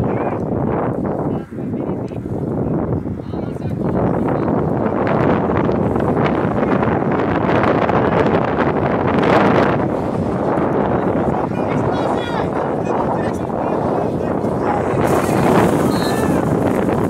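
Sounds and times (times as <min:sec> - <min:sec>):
wind on microphone: 0:00.0 - 0:17.0.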